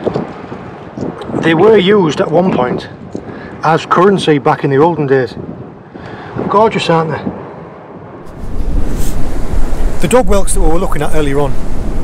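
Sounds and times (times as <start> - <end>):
wind buffeting microphone: 0.0 - 12.0
sea waves washing: 7.3 - 12.0.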